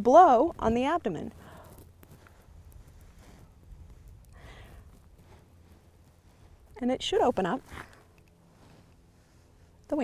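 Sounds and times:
faint low rumble: 0.0 - 10.0
soft puffs of breath: 1.3 - 6.6, 7.7 - 9.9.

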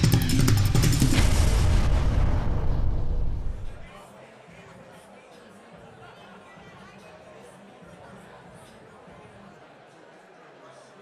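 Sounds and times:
intro music with heavy bass: 0.0 - 3.8
sharp percussive hits: 0.0 - 3.9.

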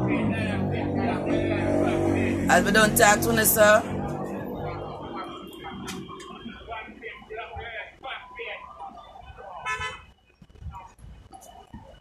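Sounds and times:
distant background voices: 0.0 - 12.0.

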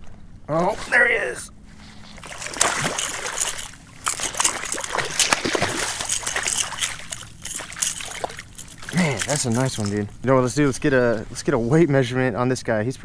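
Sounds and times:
fish thrashing and splashing water: 1.9 - 10.1.

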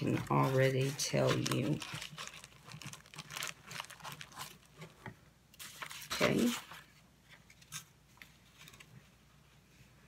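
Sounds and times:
paper rustling: 0.0 - 9.2.

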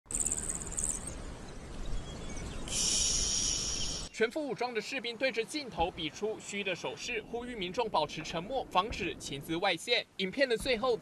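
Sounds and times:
insects chirping: 0.1 - 1.3, 2.4 - 4.1
insect high buzz: 2.7 - 4.1.

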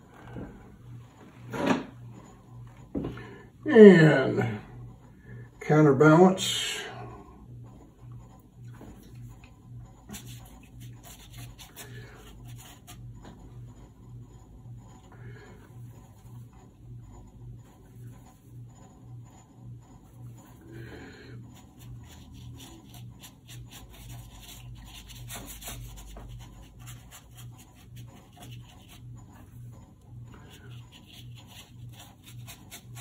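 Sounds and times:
brush scratching on paper: 8.9 - 14.0, 20.0 - 29.6, 30.3 - 33.0.

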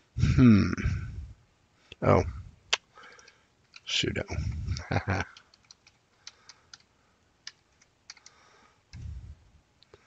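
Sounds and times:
person speaking: 2.0 - 2.4, 3.1 - 5.6
computer keyboard typing: 3.0 - 3.9, 4.7 - 8.4.

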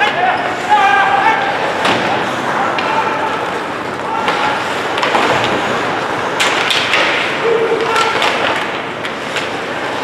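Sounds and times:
players shouting in arena: 0.0 - 1.8.

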